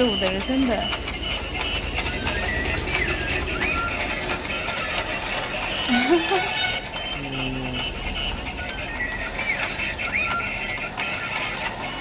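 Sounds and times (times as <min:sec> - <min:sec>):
electronic toy tune: 0:00.0 - 0:12.0
toy stair lift clattering: 0:00.0 - 0:12.0.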